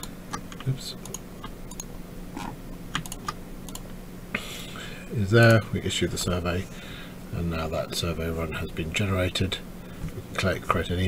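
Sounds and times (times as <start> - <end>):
computer keyboard and mouse clicks: 0.0 - 1.9, 2.9 - 3.9
faint steady hum: 0.0 - 11.0.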